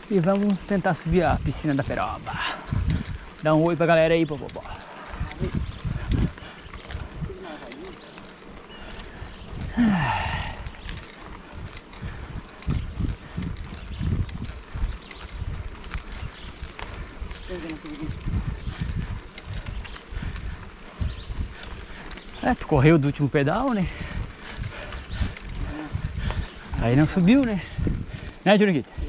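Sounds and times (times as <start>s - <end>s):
bike clicks and rattles: 0.0s - 29.0s
bike tyres over pavers: 0.0s - 29.0s
wind on microphone: 1.1s - 29.0s.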